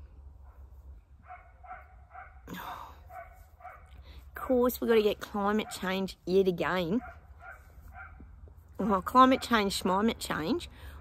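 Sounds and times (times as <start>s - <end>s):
dog yipping: 7.0s - 8.2s.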